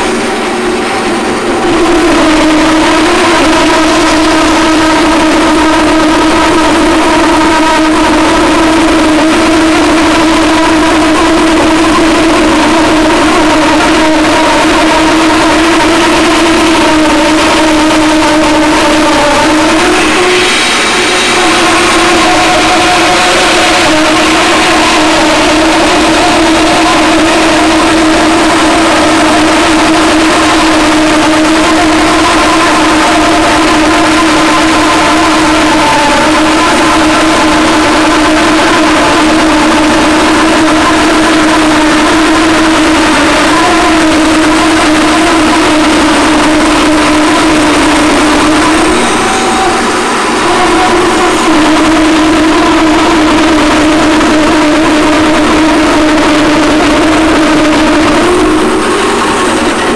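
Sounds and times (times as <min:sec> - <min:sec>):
dust collector running: 0:00.0 - 0:59.9.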